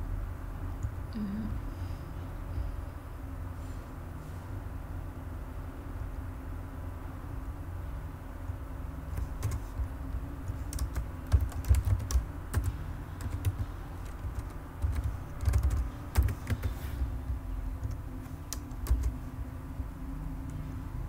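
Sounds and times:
low steady hum: 0.0s - 21.0s
computer keyboard typing: 9.1s - 16.8s, 17.8s - 19.3s.

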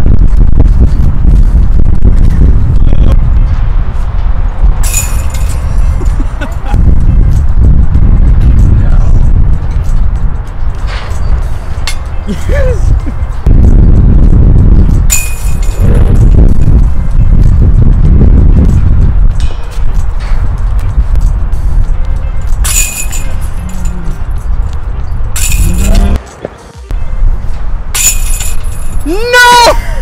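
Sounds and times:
low rumble: 0.0s - 26.2s, 26.9s - 29.0s
discs hitting metal chains: 4.8s - 5.7s, 22.6s - 24.1s, 25.4s - 26.2s, 28.0s - 29.0s
person crying out: 12.3s - 13.0s, 25.7s - 26.2s, 29.0s - 30.0s.

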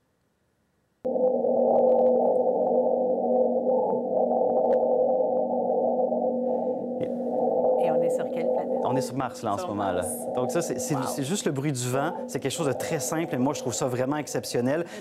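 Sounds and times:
low rumbling wind hum: 2.8s - 9.4s.

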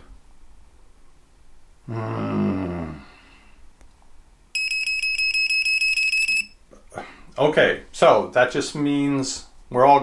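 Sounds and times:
rapid high beeping: 4.6s - 6.6s.

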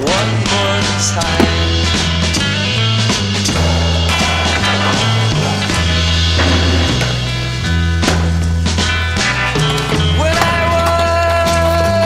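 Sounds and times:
rock music with bass and drums: 0.0s - 12.0s.

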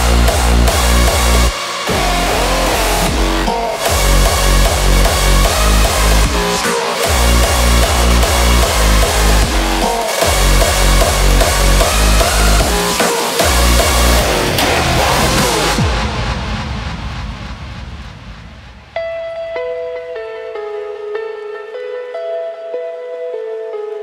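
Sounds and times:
sustained synth melody: 0.0s - 16.1s
distorted kick drums: 0.0s - 19.0s.

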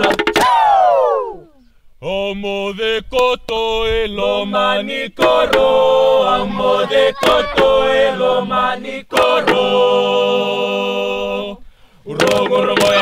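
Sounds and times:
sharp percussive strikes: 0.0s - 0.9s, 12.2s - 13.0s
group chanting in unison: 2.0s - 13.0s.

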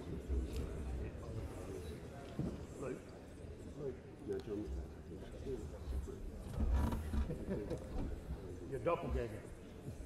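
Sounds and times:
murmur of many voices: 0.0s - 10.0s.

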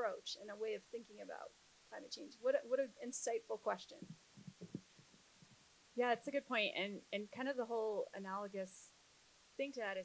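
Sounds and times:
handheld microphone thuds and rubbing: 3.9s - 5.6s.

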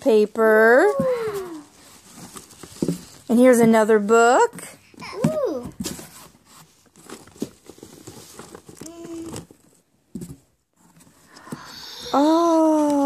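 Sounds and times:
paper and packaging rustling: 0.5s - 13.0s.

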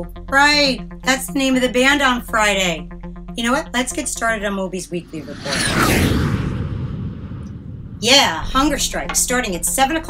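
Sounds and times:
deep boom: 5.2s - 9.1s.

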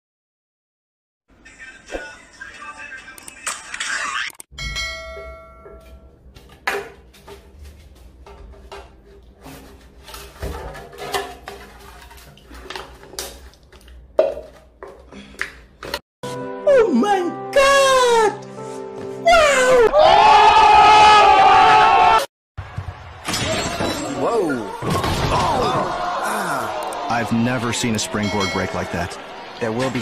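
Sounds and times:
music: 1.4s - 4.3s, 16.2s - 19.7s
ringing metallic ping: 4.6s - 6.1s.

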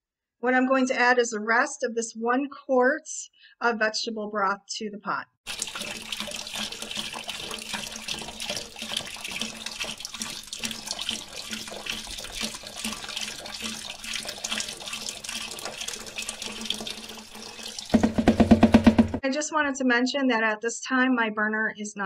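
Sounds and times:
liquid splashing and sloshing: 5.4s - 19.2s.

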